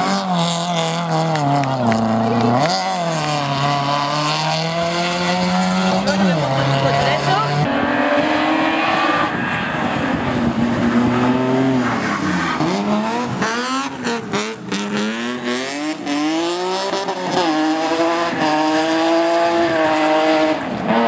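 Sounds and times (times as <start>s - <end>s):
rally car engines revving: 0.0s - 21.0s.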